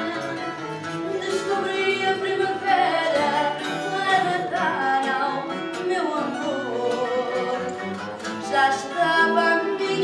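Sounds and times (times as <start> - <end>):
guitars playing: 0.0 - 10.0
woman singing: 0.0 - 10.0.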